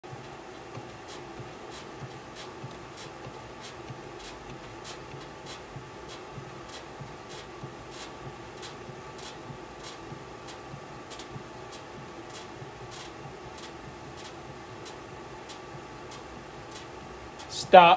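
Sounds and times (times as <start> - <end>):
faint machine hum: 0.0 - 17.9
bat rolling scratchy ticks: 0.5 - 17.5.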